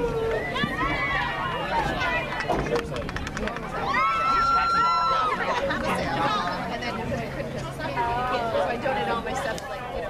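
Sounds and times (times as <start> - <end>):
voices calling and chattering: 0.0 - 10.0.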